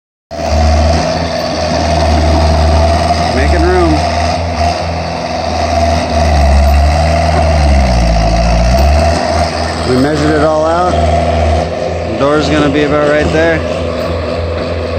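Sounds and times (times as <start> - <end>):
engine rumbling: 0.3 - 14.9.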